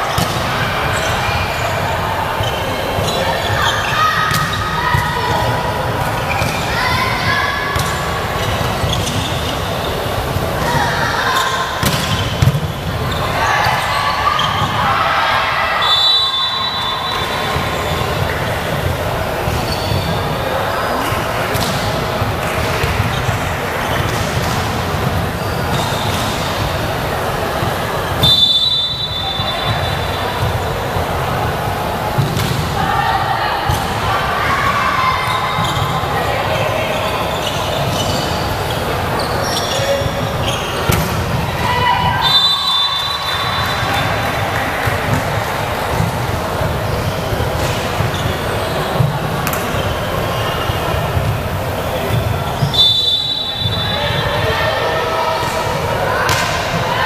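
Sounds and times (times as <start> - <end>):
voices in sports hall: 0.0 - 57.0
referee's whistle blasts: 15.8 - 18.0, 28.2 - 30.3, 41.9 - 44.1, 52.6 - 54.4.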